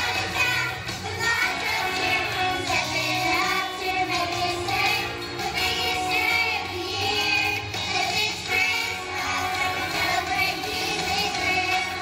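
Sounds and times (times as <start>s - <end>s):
backing music track: 0.0s - 12.0s
children's choir singing: 0.0s - 12.0s.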